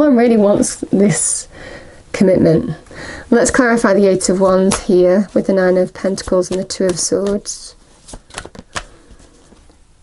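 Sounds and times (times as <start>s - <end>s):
cards rustling while shuffled: 6.1s - 9.8s.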